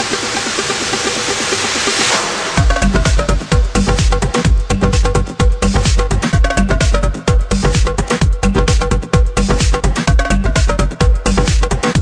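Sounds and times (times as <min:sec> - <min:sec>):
noise sweep: 0:00.0 - 0:12.0.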